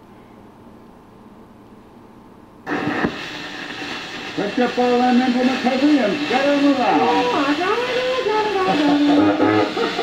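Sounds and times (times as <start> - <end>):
record surface hiss: 0.0 - 10.0.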